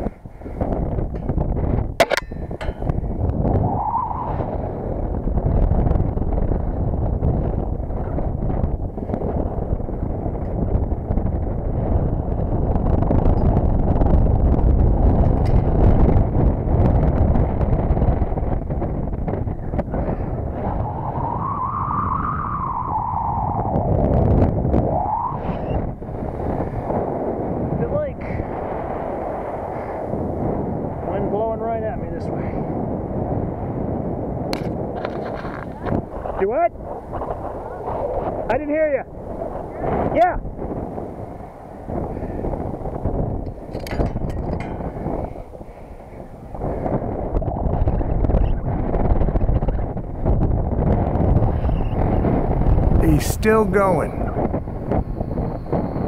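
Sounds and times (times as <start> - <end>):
wind buffeting microphone: 0.0 - 56.0
sharp metallic click: 2.0 - 2.9.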